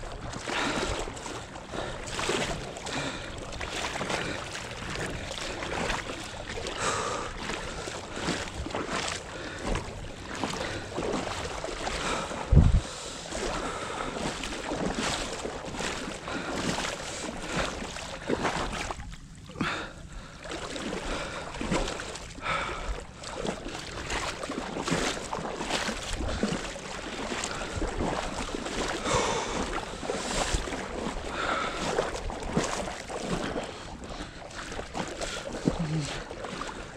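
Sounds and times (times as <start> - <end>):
water sloshing from wading: 0.0 - 36.9
wind rumbling on microphone: 7.6 - 15.9
low thump: 12.5 - 12.8.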